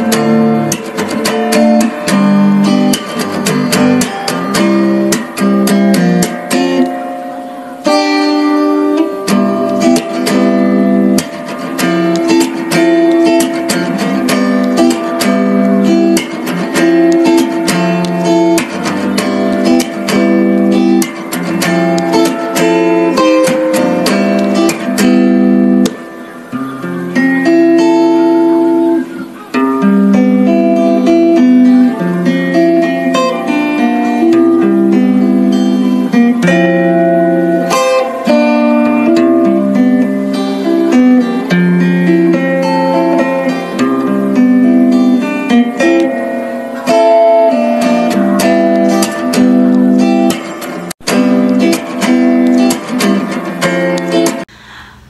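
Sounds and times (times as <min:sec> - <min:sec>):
acoustic guitar strumming: 0:00.0 - 0:54.9.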